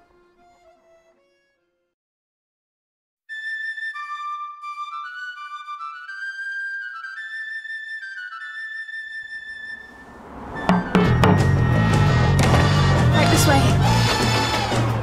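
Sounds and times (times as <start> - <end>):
solo woodwind melody: 3.3 - 14.2.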